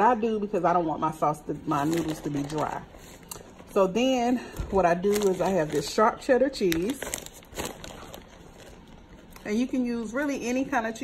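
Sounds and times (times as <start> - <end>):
plastic bag crinkling: 1.6 - 3.9, 4.6 - 9.7.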